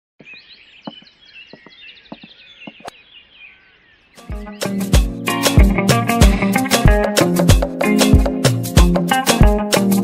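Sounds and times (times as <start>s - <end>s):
birds chirping sliding notes: 0.2s - 6.1s.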